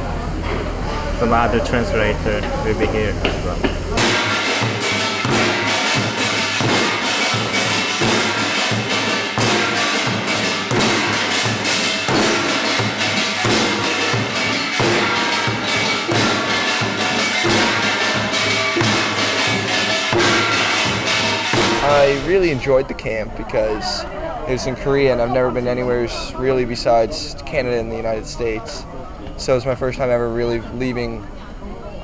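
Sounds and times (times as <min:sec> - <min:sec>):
drums playing fast rhythm: 0:01.2 - 0:22.9
small gongs clanging: 0:03.4 - 0:22.8.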